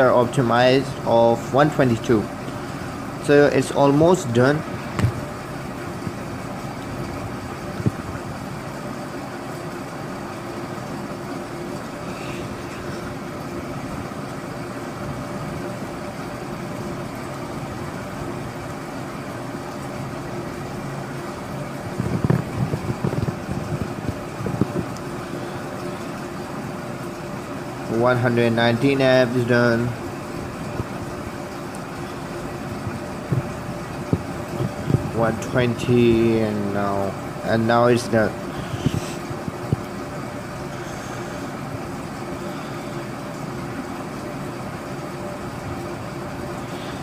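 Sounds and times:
irregular mechanical noises: 0:00.0 - 0:47.0
low mechanical motor hum: 0:00.0 - 0:47.0.

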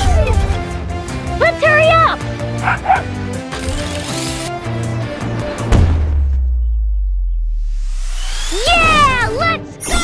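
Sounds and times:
background music: 0:00.0 - 0:10.0
cartoon dog barking: 0:02.6 - 0:03.1.

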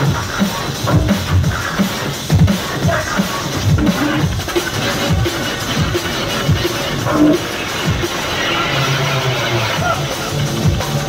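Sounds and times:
drum and bass music: 0:00.0 - 0:11.0.

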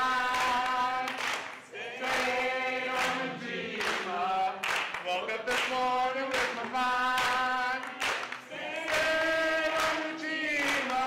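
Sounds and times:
group singing unaccompanied: 0:00.0 - 0:11.0
hand claps: 0:00.0 - 0:11.0.

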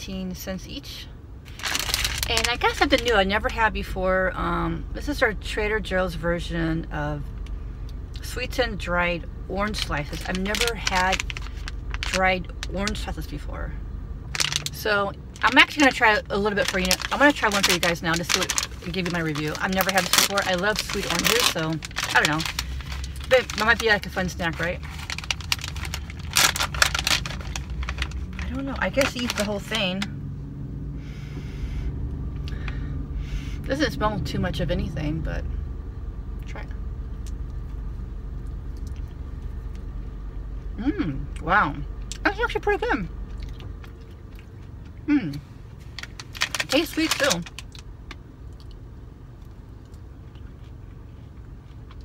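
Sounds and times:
car cabin hum: 0:00.0 - 0:52.0
snack bag crinkling: 0:01.5 - 0:03.2, 0:09.7 - 0:13.1, 0:14.3 - 0:14.8, 0:15.4 - 0:29.9, 0:45.8 - 0:48.8
person chewing: 0:43.2 - 0:45.5.

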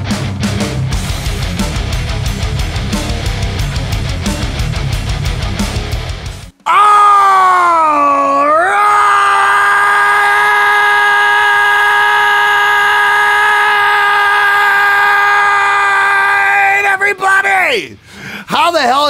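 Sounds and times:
man screaming: 0:06.6 - 0:18.0.

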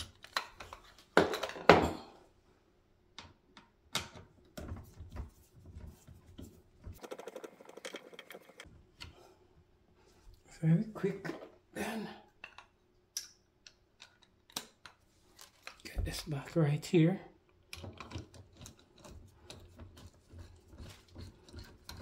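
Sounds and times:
plastic parts clicking and knocking: 0:12.4 - 0:15.8, 0:17.6 - 0:20.1.

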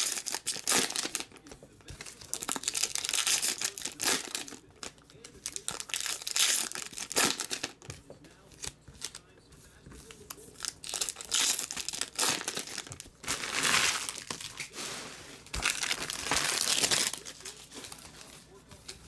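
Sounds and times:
foil wrappers tearing and crinkling: 0:00.0 - 0:07.9, 0:10.6 - 0:18.4.

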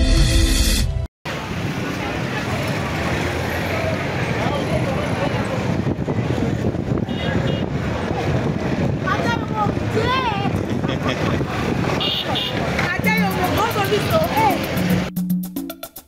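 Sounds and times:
street market hubbub: 0:01.2 - 0:15.1
passing motor traffic: 0:01.3 - 0:15.1
music with clicking beat: 0:13.0 - 0:16.0.

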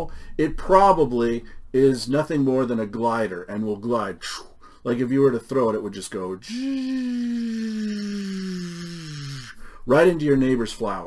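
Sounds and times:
man making falling vocal sound: 0:06.4 - 0:09.6.

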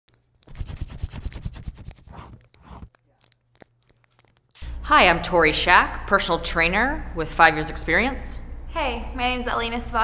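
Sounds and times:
pencil scribbling on paper: 0:00.4 - 0:03.0.

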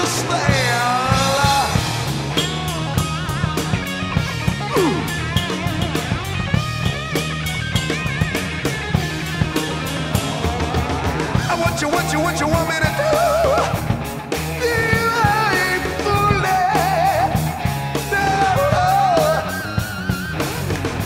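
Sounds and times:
bass guitar: 0:00.0 - 0:21.0
drum kit: 0:00.0 - 0:21.0
electric guitar with vibrato: 0:00.0 - 0:21.0.

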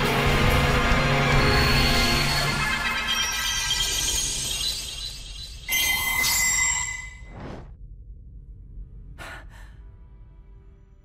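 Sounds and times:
low rumble: 0:07.3 - 0:11.0.

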